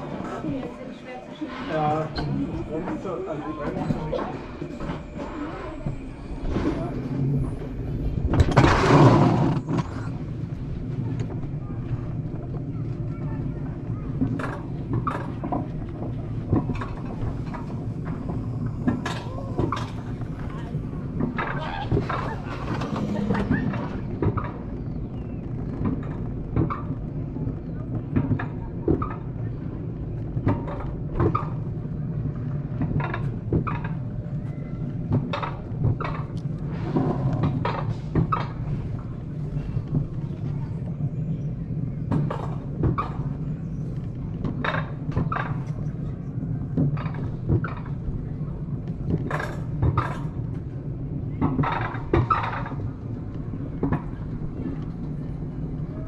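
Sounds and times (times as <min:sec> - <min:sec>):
low rumble of sled wheels: 0:00.0 - 0:56.0.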